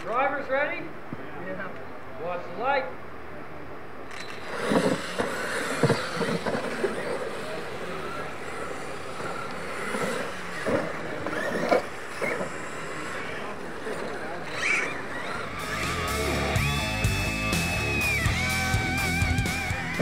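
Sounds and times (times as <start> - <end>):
rc trucks running on dirt: 4.1 - 20.0.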